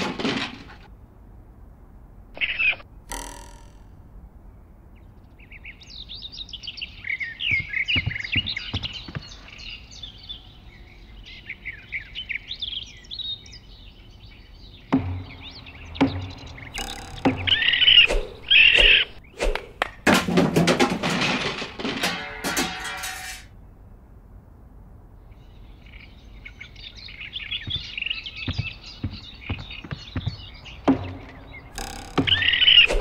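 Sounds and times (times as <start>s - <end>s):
songbirds chirping: 0.0s - 20.0s, 23.5s - 33.0s
sharp thuds and knocks: 14.9s - 22.0s, 27.7s - 33.0s.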